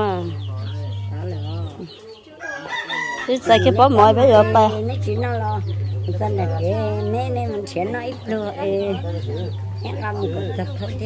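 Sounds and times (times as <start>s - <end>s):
rooster crowing: 2.4s - 5.1s.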